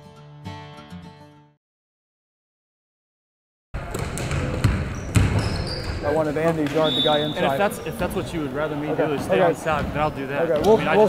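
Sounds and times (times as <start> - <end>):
basketballs bouncing on wooden floor: 3.8 - 6.8, 9.7 - 10.8
sneaker squeak: 4.0 - 7.9.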